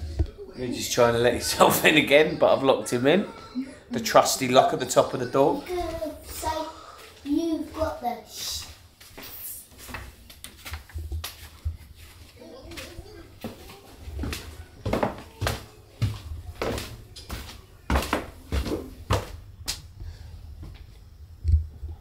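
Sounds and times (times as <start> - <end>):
footsteps climbing stairs: 9.0 - 19.8.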